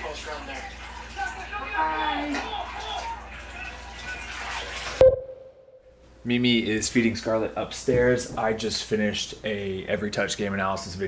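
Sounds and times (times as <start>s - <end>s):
bathwater sloshing and splashing: 0.0s - 5.0s.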